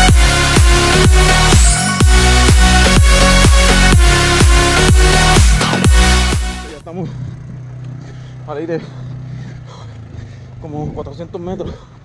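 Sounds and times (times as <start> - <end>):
engine running low hum: 0.0 - 12.0.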